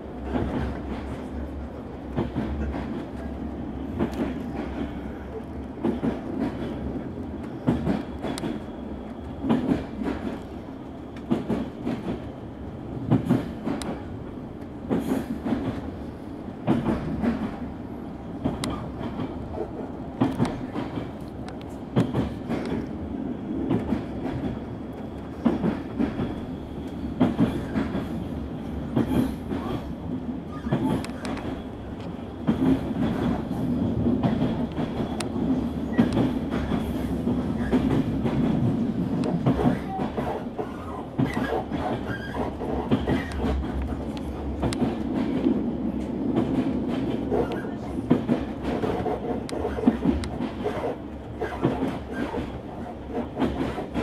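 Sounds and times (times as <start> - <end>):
train rumbling: 0.0 - 54.0.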